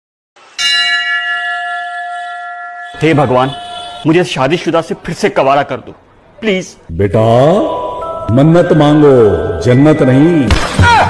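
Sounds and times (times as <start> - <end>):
bell ringing: 0.6 - 4.4, 7.4 - 10.5.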